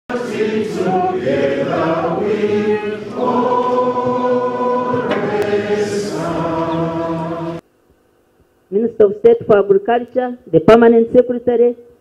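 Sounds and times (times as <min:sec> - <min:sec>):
group of people singing: 0:00.1 - 0:07.6.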